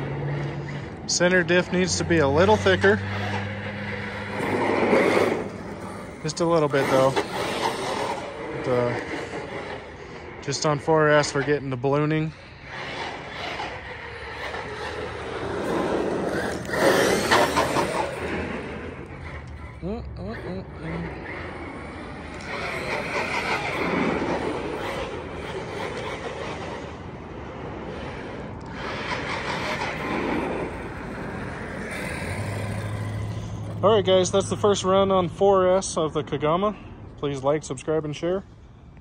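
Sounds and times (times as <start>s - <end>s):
tyre noise on asphalt: 0.0s - 20.0s, 20.7s - 35.6s
electric motor whining: 0.0s - 33.8s.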